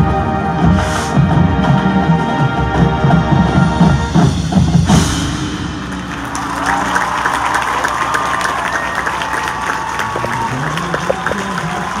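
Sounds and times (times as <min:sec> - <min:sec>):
marching band: 0:00.0 - 0:12.0
stadium crowd applauding and cheering: 0:05.6 - 0:12.0.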